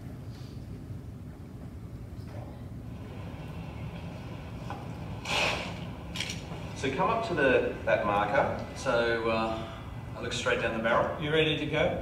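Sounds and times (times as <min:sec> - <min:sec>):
low room noise rumble: 0:00.0 - 0:12.0
brief rush of noise: 0:05.2 - 0:05.9.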